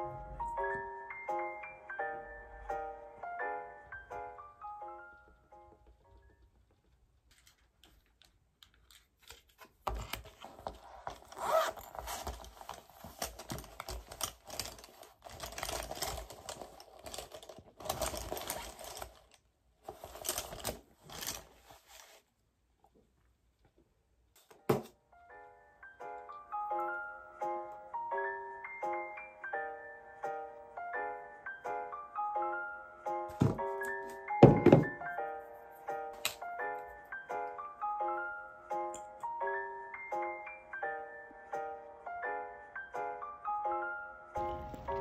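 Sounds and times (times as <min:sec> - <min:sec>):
background music with keyboard: 0:00.0 - 0:06.8, 0:24.5 - 0:45.0
packaging rustling: 0:07.2 - 0:22.3
plastic tub knocking: 0:33.3 - 0:33.7, 0:34.4 - 0:35.0.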